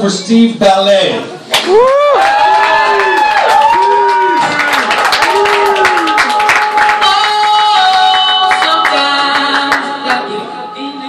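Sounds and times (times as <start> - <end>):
audience applause: 1.5 - 9.8
music with sung melody: 6.2 - 11.0.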